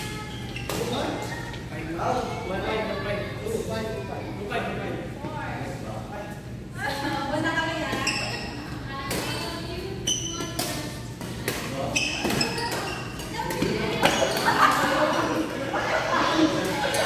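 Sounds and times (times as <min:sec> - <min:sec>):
racket hitting shuttlecock: 0:10.4 - 0:14.5.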